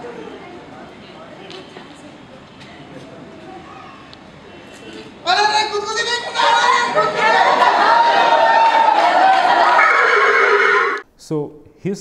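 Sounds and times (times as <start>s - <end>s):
actors' voices: 5.3s - 11.0s
actor imitating horse whinny: 9.8s - 11.0s.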